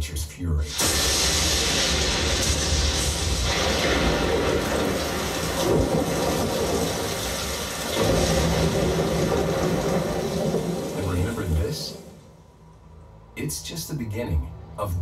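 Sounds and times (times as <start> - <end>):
heavy rain: 0.7 - 12.6.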